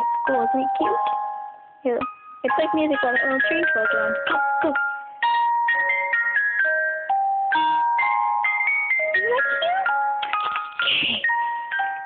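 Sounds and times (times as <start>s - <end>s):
tinny electronic melody: 0.0s - 12.0s.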